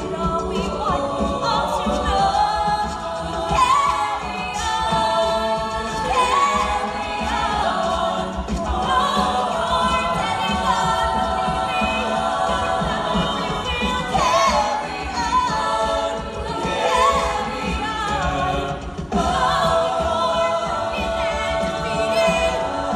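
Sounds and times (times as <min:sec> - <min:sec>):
a cappella group singing: 0:00.0 - 0:22.9.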